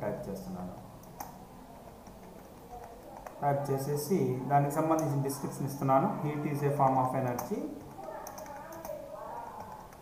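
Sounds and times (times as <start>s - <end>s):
computer keyboard key clicks: 7.3s - 9.0s.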